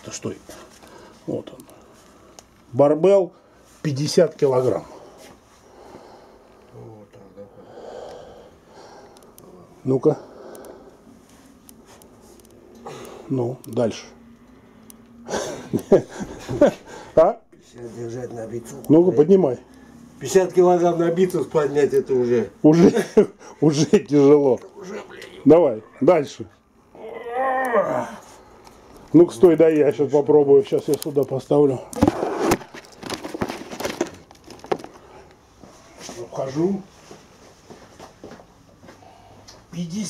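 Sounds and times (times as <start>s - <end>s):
man talking: 2.7s - 5.0s, 6.7s - 7.7s, 9.5s - 10.3s, 13.3s - 14.2s, 17.2s - 26.6s, 29.1s - 32.0s
rustling handling noise: 30.6s - 38.5s.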